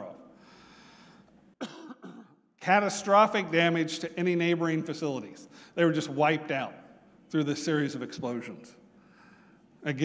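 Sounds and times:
man speaking: 0.0s - 0.3s, 2.6s - 8.9s, 9.8s - 10.0s
person coughing: 1.6s - 2.4s.

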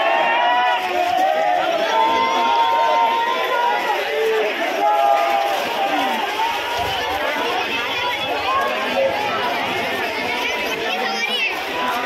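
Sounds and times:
large crowd talking and calling out: 0.0s - 12.0s.

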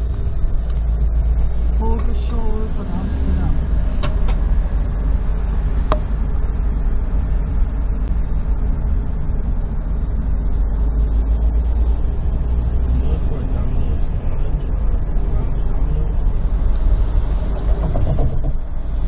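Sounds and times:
vehicle interior road noise: 0.0s - 19.0s.

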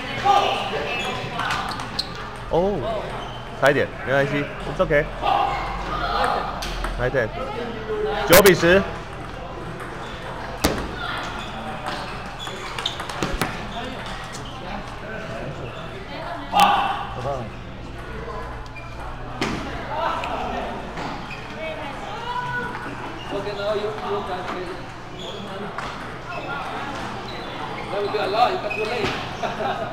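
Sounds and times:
murmur of voices: 0.0s - 29.9s.

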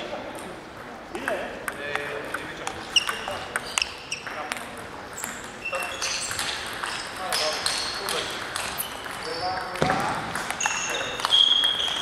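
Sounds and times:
table tennis ball clicks: 1.1s - 12.0s
shoes squeaking on floor: 2.8s - 4.4s, 5.1s - 12.0s.

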